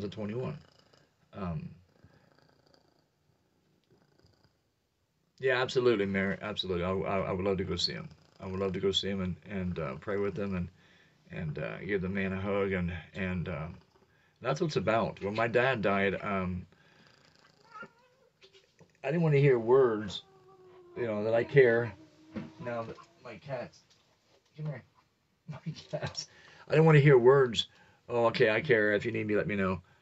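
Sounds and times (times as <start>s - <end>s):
cat purring: 0.0s - 4.7s, 5.6s - 23.6s
soft cat vocalization: 17.0s - 23.6s.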